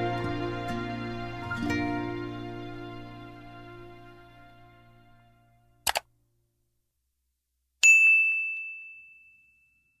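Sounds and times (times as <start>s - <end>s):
bright bell-like ding: 7.8s - 10.0s.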